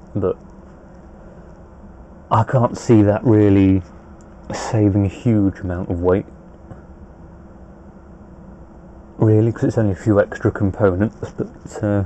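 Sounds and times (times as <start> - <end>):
faint steady tone: 0.0 - 12.0
low hum and hiss: 0.0 - 12.0.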